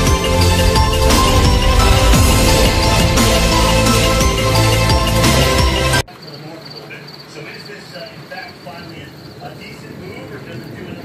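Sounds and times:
background music: 0.0s - 6.1s
crickets chirping: 0.2s - 11.0s.

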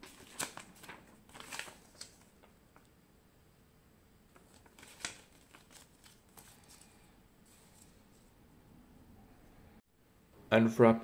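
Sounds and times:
paper leaflet rustling: 0.0s - 2.6s, 4.3s - 8.4s.

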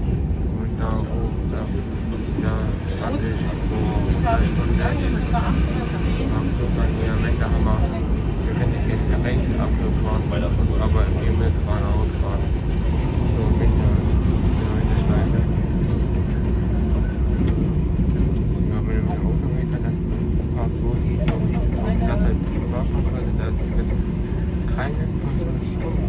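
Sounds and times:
indistinct voices talking: 0.0s - 26.0s
vehicle engine rumbling: 0.0s - 26.0s.

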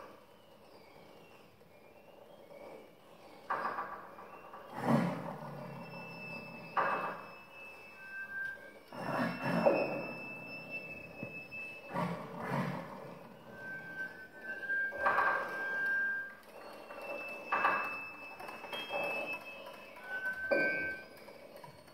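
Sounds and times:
faint high held tones: 5.5s - 21.9s.

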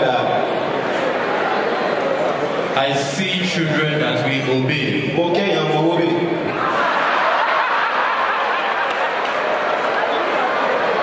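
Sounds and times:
large audience laughing: 6.5s - 11.0s.

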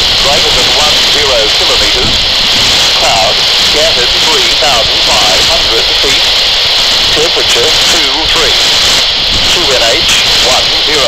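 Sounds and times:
static hiss: 0.0s - 11.0s
voice through small speaker: 0.2s - 2.2s, 2.8s - 6.4s, 7.1s - 8.7s, 9.4s - 11.0s.

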